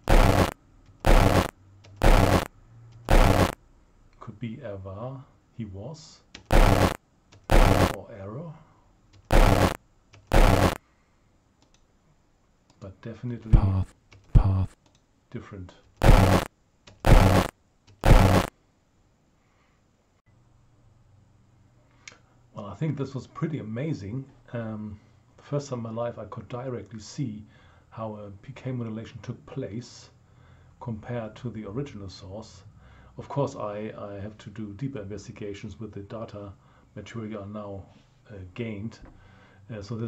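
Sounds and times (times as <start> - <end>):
harsh buzzy voice-like burst: 0.0 - 2.5, 3.1 - 3.6, 6.5 - 8.1, 9.3 - 10.8, 13.5 - 14.8, 16.0 - 16.5, 17.1 - 18.5.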